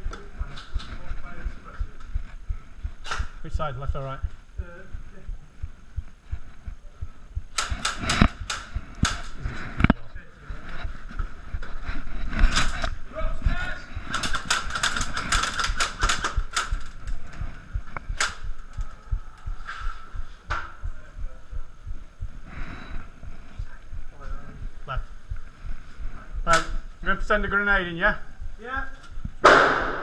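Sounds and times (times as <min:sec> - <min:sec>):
airsoft guns firing: 0:07.6 - 0:09.4, 0:29.4 - 0:30.0.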